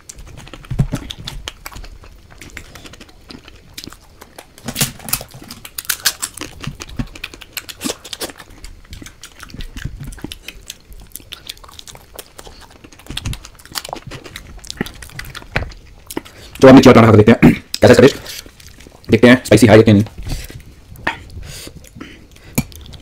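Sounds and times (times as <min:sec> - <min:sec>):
wet chewing and mouth smacks: 0:00.0 - 0:16.6, 0:17.7 - 0:19.1, 0:20.1 - 0:23.0.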